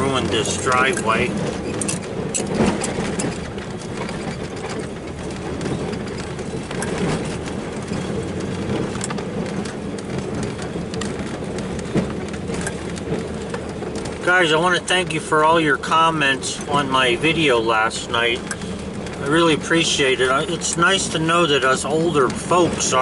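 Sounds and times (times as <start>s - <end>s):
truck engine running: 0.0s - 23.0s.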